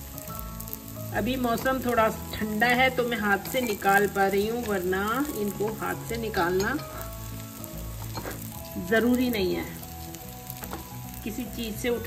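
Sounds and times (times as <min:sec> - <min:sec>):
batter sizzling in oil: 0:00.0 - 0:12.0.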